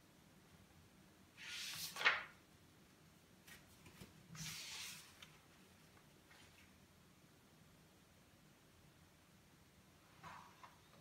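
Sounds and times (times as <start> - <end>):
paper rustling: 1.4 - 2.4.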